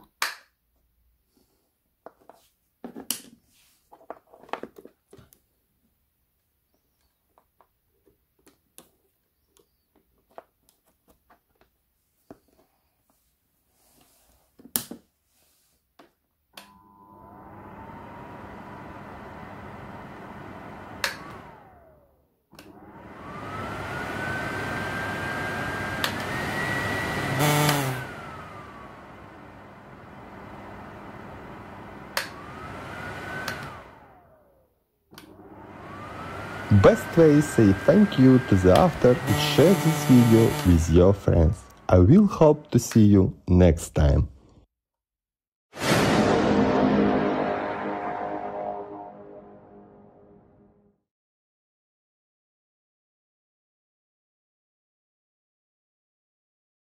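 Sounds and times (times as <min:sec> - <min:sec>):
blower motor whine: 0:16.6 - 0:34.6, 0:35.2 - 0:42.0.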